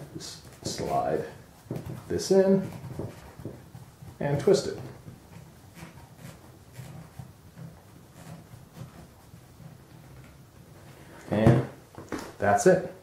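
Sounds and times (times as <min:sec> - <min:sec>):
fingers twisting a fitting: 0:00.0 - 0:11.0.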